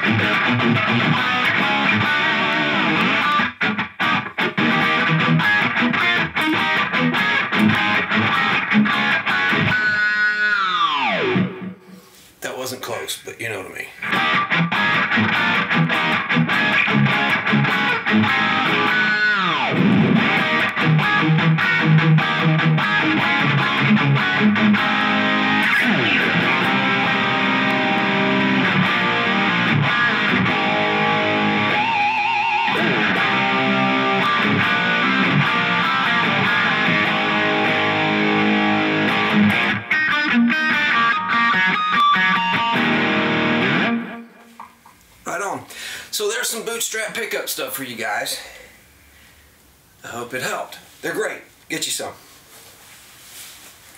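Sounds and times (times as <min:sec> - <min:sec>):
distorted electric guitar riffs: 0:00.0 - 0:12.2, 0:14.0 - 0:45.0.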